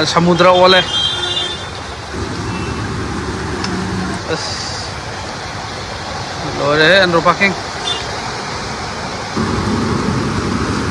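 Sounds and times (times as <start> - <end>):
vehicle engines: 0.0 - 10.9
vehicles driving through water: 0.0 - 10.9.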